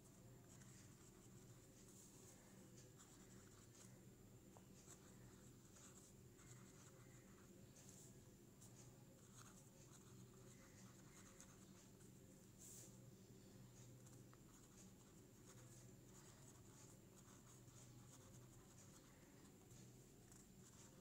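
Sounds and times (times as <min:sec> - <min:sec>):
low steady hum: 0:00.0 - 0:21.0
pen scratching on paper: 0:00.1 - 0:04.0, 0:04.8 - 0:08.0, 0:09.2 - 0:12.0, 0:13.8 - 0:21.0.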